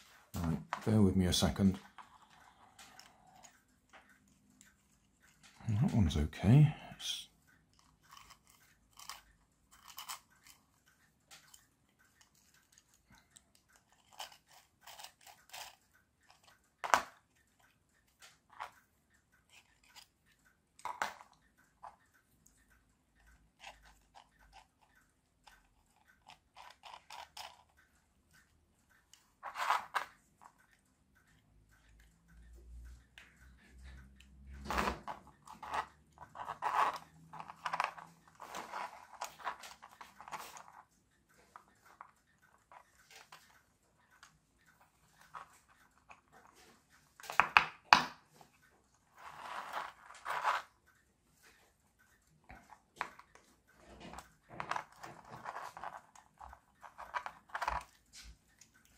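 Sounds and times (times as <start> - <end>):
plastic parts clicking and knocking: 7.7 - 22.0, 23.3 - 27.8, 29.0 - 30.8, 34.5 - 48.6, 52.4 - 58.9.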